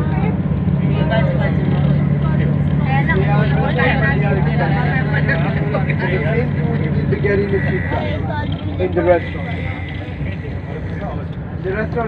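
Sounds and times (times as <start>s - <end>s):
bus engine drone: 0.0s - 12.0s
passengers chatting indistinctly: 0.0s - 12.0s.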